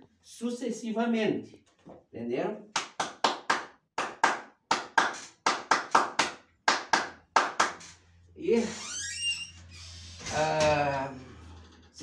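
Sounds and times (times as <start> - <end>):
person clapping hands: 2.8 - 7.9.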